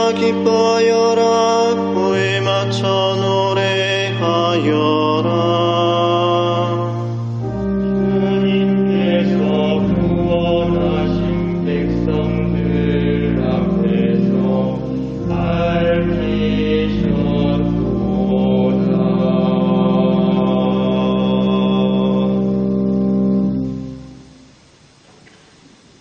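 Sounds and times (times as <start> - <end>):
voices chanting a psalm: 0.0 - 24.4
sustained accompaniment chords: 0.0 - 25.0.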